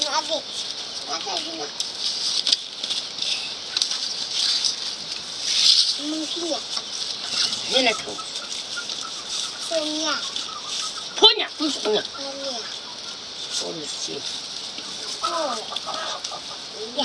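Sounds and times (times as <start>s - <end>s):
child's voice: 0.0s - 1.8s, 6.0s - 6.7s, 9.6s - 10.4s, 11.4s - 12.8s, 15.2s - 15.7s, 16.8s - 17.0s
dry husks rustling and crackling: 0.0s - 17.0s.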